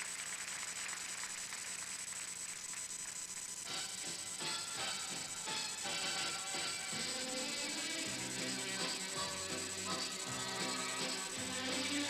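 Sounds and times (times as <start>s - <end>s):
tape hiss: 0.0s - 12.0s
thin high whine: 0.2s - 12.0s
music: 3.6s - 12.0s.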